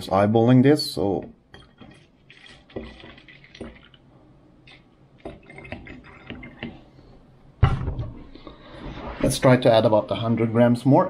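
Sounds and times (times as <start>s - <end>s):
faint liquid sounds: 1.0s - 7.4s
loud thump: 7.6s - 8.3s.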